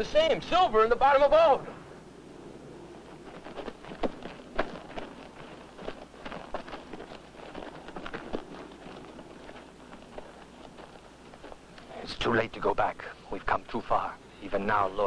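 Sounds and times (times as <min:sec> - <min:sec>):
hooves clopping on stony ground: 0:02.8 - 0:12.0.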